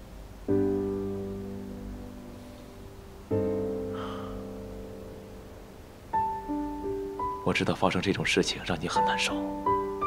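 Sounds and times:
soft piano chord: 0.0 - 10.0.

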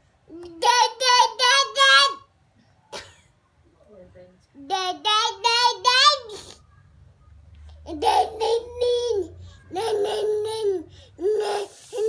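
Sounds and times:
toddler babbling: 0.3 - 2.2, 4.6 - 6.6, 7.8 - 12.0.

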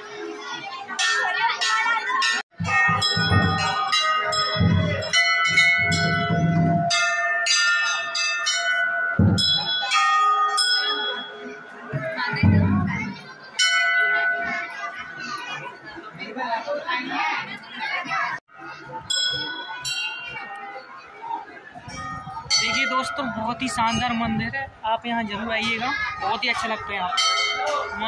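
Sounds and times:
brass bells clanging: 0.9 - 15.4, 19.0 - 20.9, 21.9 - 24.4, 27.1 - 28.0.

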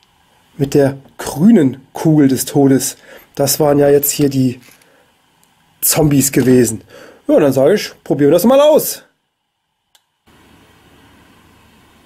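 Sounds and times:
low hiss of room tone: 0.0 - 12.0.

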